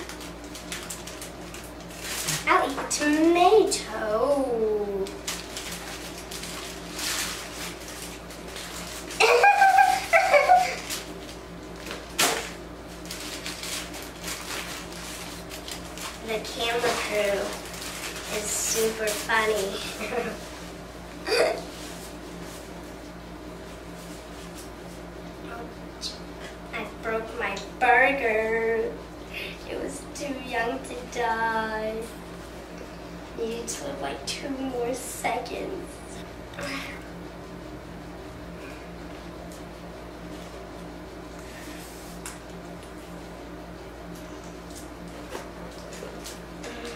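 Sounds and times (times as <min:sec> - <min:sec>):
paper wrapper crinkling: 0:00.0 - 0:02.7, 0:05.0 - 0:20.6
steady low hum: 0:00.0 - 0:46.9
girl speaking: 0:02.4 - 0:05.2, 0:16.2 - 0:17.7, 0:18.3 - 0:20.5, 0:25.4 - 0:32.2, 0:33.4 - 0:37.0.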